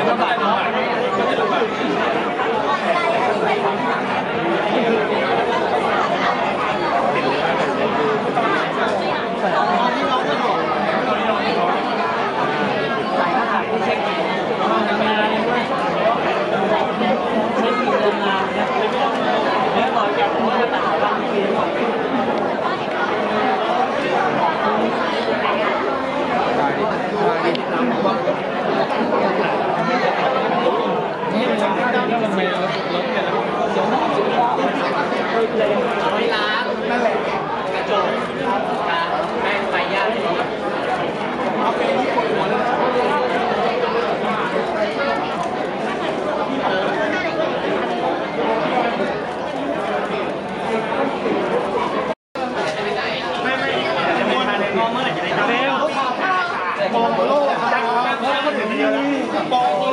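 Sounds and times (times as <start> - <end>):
overlapping chatter in a hall: 0.0 - 59.9.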